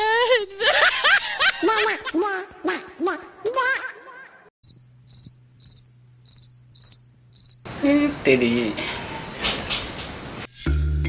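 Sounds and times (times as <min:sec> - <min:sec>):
cricket chirping: 0:04.6 - 0:10.7.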